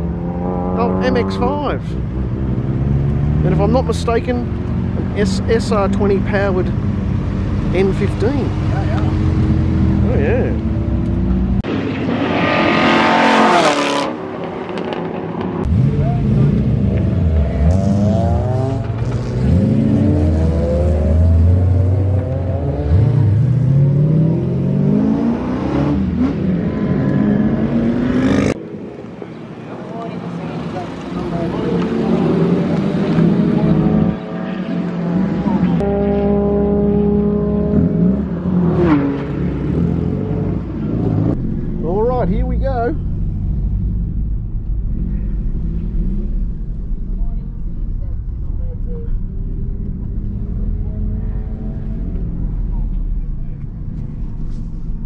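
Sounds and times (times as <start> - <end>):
race cars accelerating past: 11.6 - 28.6.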